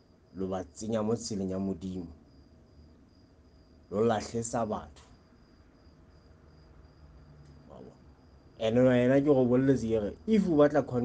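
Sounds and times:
cricket chirping: 0.0 - 11.0.

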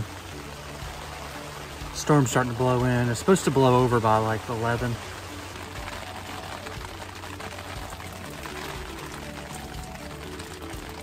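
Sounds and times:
rain on tent fabric: 0.0 - 11.0.

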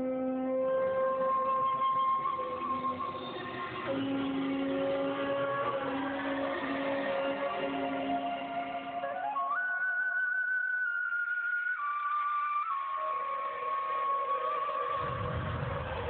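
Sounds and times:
flute playing slow melody: 0.0 - 16.0
low rumble: 15.0 - 16.0.

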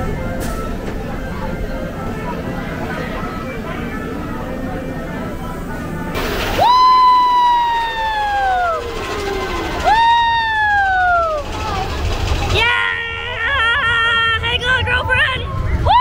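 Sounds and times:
riders whooping: 6.2 - 14.4.

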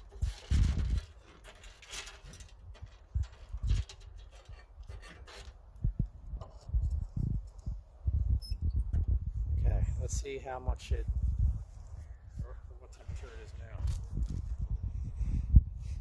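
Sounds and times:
wood scraping and knocking on metal: 0.0 - 5.7, 6.4 - 7.1.

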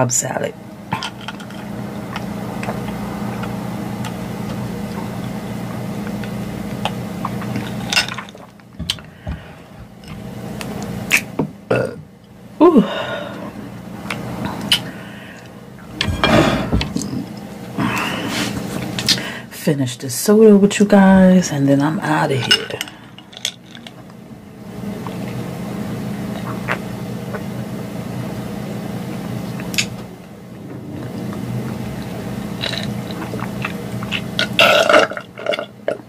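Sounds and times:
woman burping: 11.7 - 12.0, 12.6 - 13.0, 34.6 - 35.6.

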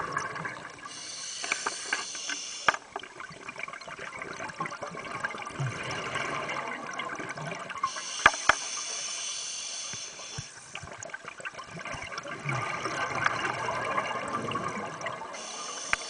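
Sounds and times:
regulator hissing inhale: 0.9 - 2.8, 7.8 - 10.7, 15.4 - 16.0
bubbling gurgling exhale: 3.3 - 16.0.

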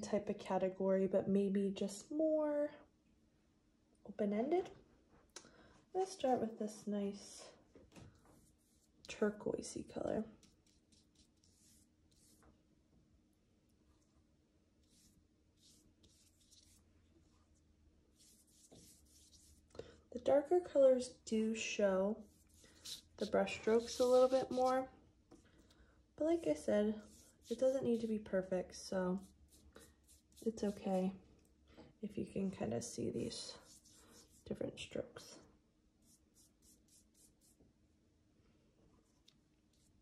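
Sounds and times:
paintbrush swishing on paper: 8.2 - 12.6, 14.8 - 19.7, 22.2 - 24.9, 26.4 - 31.1, 32.4 - 34.6, 36.0 - 37.6, 39.0 - 40.0.

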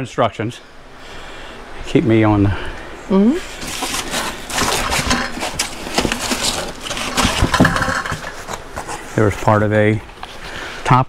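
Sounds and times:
packaging scraping and crackling: 3.5 - 9.6.

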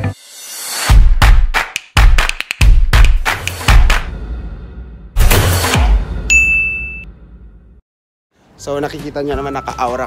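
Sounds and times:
bright high ding: 6.3 - 7.1.

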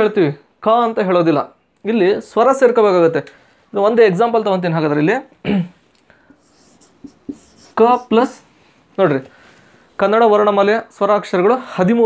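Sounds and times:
marker scratching on whiteboard: 6.3 - 8.4.

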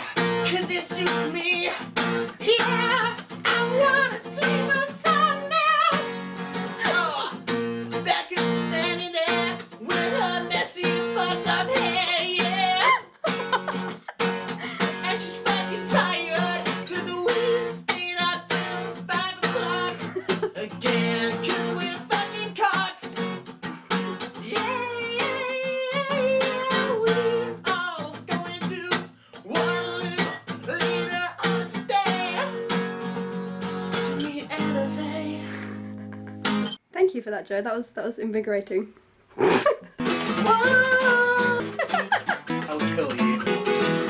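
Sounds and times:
man singing: 0.0 - 13.6, 14.6 - 23.4, 24.3 - 32.9, 33.8 - 36.0, 40.2 - 44.0
acoustic guitar strumming: 0.0 - 36.8, 40.0 - 44.0.

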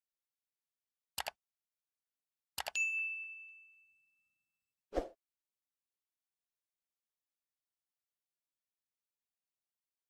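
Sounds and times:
notification bell ding: 2.7 - 4.2.

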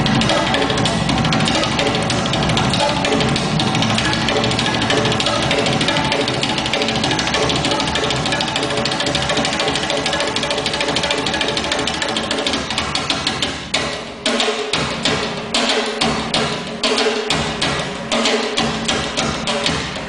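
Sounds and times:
hand drumming on small drums: 0.0 - 20.0.

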